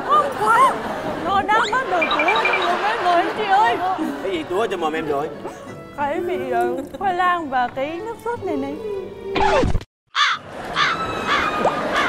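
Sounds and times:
cartoon crow cawing: 10.1s - 12.0s.

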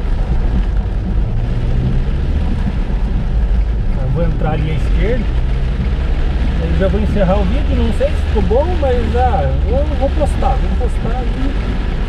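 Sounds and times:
car engine and tyre rumble: 0.0s - 12.0s
rain and spray hissing on car: 0.0s - 12.0s.

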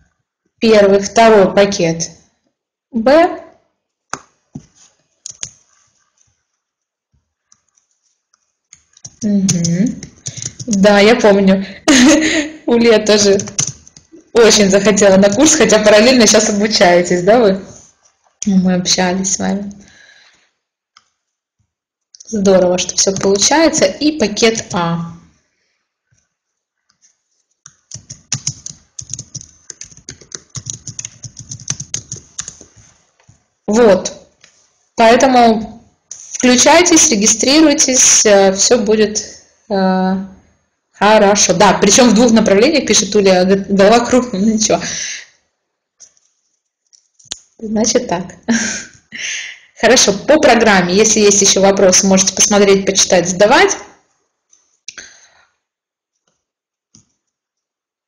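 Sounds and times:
computer keyboard clicks: 5.2s - 5.6s, 7.5s - 10.8s, 13.3s - 14.1s, 27.6s - 32.8s.

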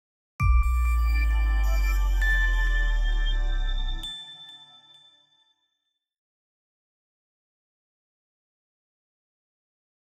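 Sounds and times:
bright bell-like ding: 0.4s - 4.9s.

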